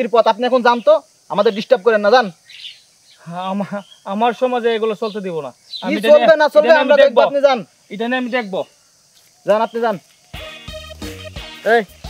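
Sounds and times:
person talking: 3.2 - 8.7.

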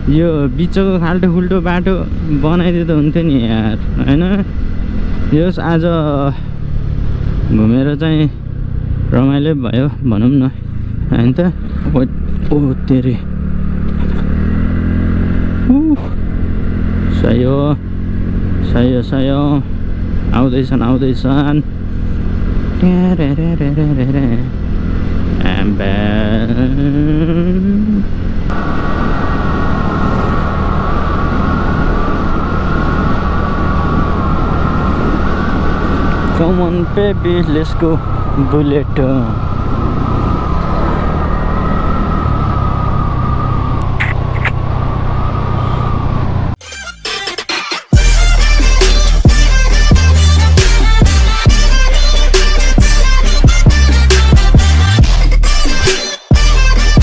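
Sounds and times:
scooter engine rumble: 0.0 - 46.6, 47.9 - 57.0
high whine: 9.2 - 46.6, 47.9 - 57.0
man's drawn-out voice: 22.7 - 24.6, 25.4 - 28.1, 36.3 - 39.5
wind noise: 26.8 - 37.0, 37.9 - 46.6.

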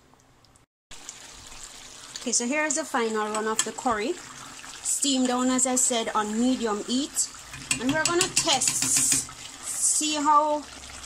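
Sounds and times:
pot simmering on stove: 0.2 - 11.0.

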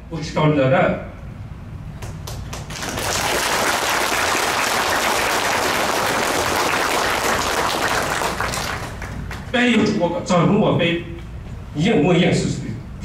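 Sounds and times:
audience applauding: 2.0 - 9.5.

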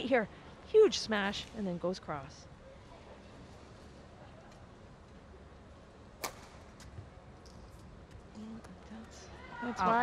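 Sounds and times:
indoor hall background noise: 0.0 - 10.0
racket striking shuttlecock: 6.2 - 6.6.

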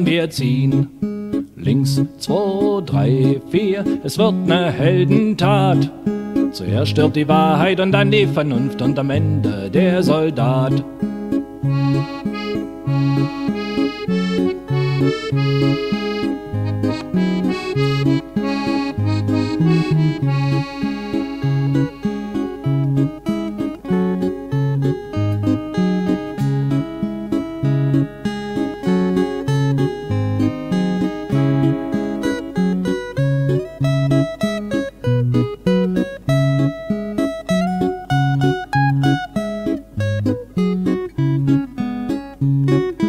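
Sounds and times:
guitar bass pattern: 0.0 - 43.0
melody line: 11.6 - 25.0.

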